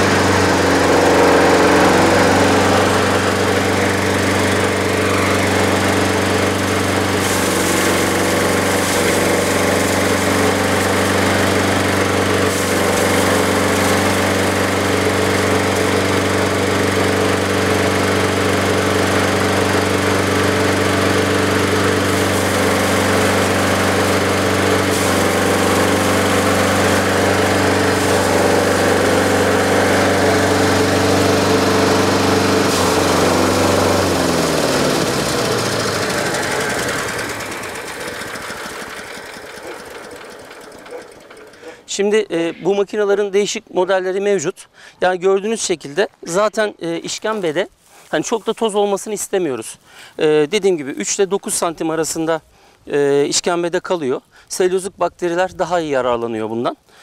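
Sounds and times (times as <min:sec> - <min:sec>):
hay being shredded: 0:00.0 - 0:42.0, 0:46.3 - 0:52.7
small petrol engine running: 0:00.0 - 0:42.0.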